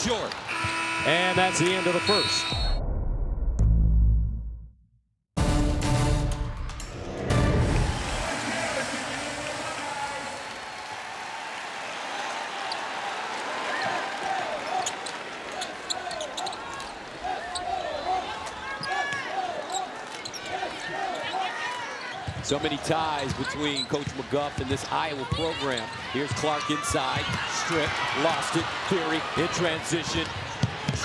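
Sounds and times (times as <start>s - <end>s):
arena crowd noise: 0.0s - 2.6s, 7.6s - 31.0s.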